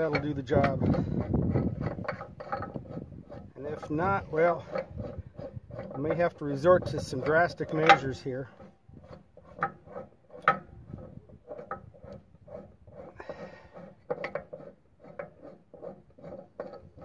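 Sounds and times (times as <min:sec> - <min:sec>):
light metal clicks and clunks: 0:00.0 - 0:12.2
metal scrape: 0:00.0 - 0:17.0.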